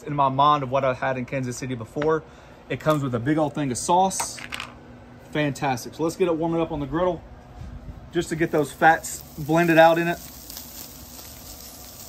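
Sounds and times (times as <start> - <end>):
meat sizzling on griddle: 8.3 - 12.0.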